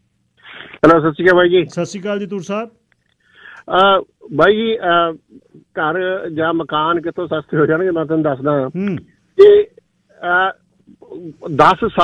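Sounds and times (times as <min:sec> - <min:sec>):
man talking over telephone: 0:00.8 - 0:02.8, 0:03.6 - 0:12.0.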